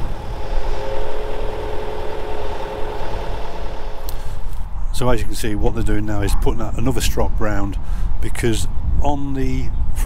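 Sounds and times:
crane engine running: 0.0 - 4.6
winch whining: 0.0 - 4.6.

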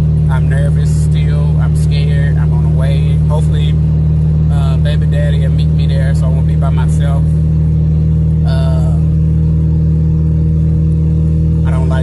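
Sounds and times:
car cabin drone: 0.0 - 12.0.

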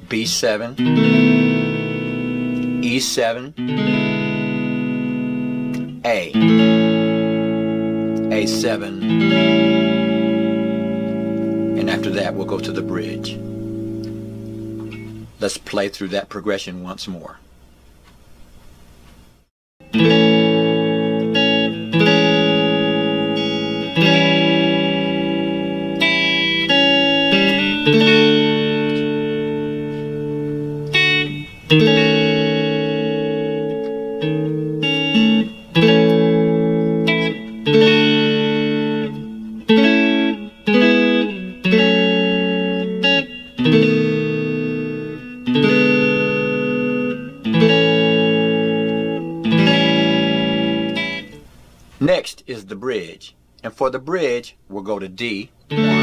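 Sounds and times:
electric guitar chords ringing: 0.0 - 15.4, 19.8 - 52.2, 55.6 - 56.0.

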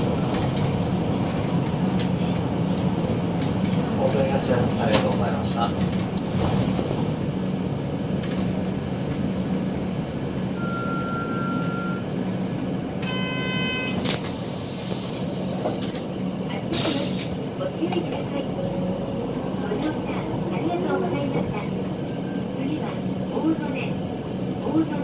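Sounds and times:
bus engine and road drone: 0.0 - 25.0
short electronic tone: 10.6 - 12.1, 13.0 - 14.0
recorded announcement: 17.6 - 18.9, 19.5 - 24.0, 24.6 - 25.0.

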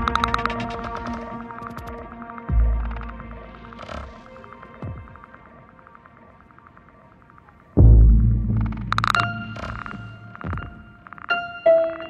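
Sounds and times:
ambient droning music: 0.0 - 12.0.

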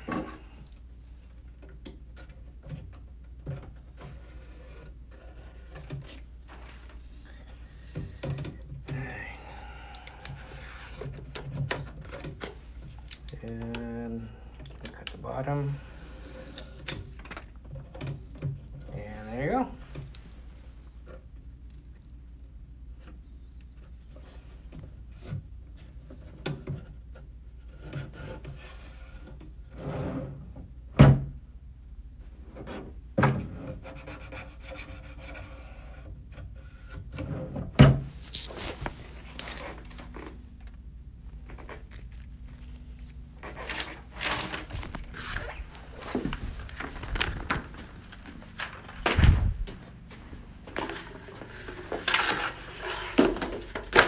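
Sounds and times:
hands rubbing and scraping wood: 38.1 - 40.4, 41.4 - 54.0.

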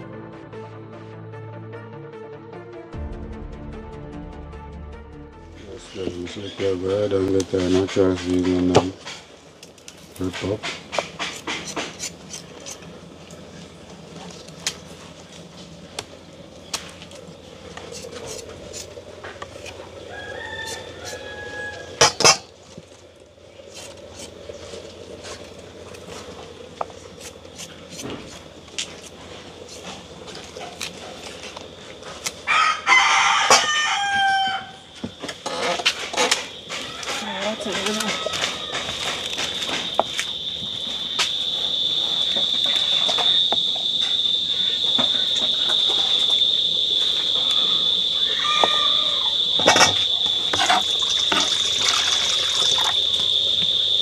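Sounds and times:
rooster crowing: 19.8 - 22.4, 32.4 - 54.0.

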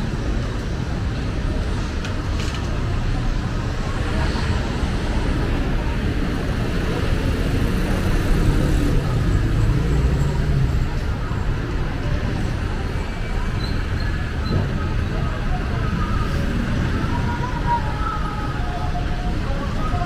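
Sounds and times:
passing cars and motorcycles: 0.0 - 20.0.

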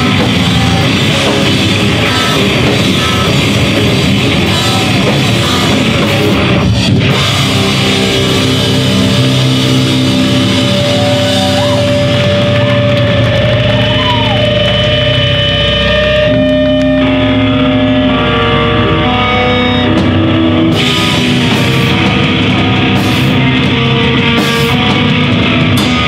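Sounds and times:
bending guitar note: 0.0 - 26.0
hardcore band playing live: 0.0 - 26.0.

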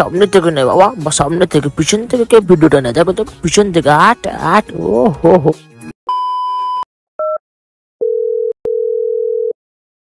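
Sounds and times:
telephone tones: 8.0 - 9.6.

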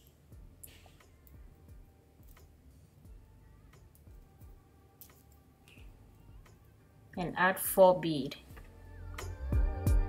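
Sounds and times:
beads clicking together: 2.2 - 2.5, 3.8 - 6.8.

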